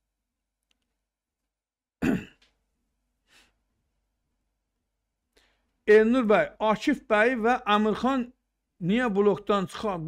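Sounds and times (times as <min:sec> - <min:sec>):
faint breath: 0:03.2 - 0:03.7, 0:05.3 - 0:05.8.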